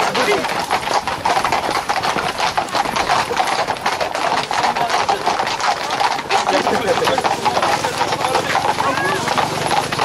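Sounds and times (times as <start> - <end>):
hoofbeats on asphalt: 0.0 - 10.0.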